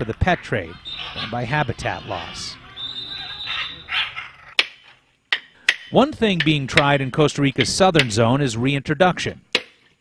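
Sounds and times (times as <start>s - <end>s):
macaws squawking: 0.0s - 5.1s.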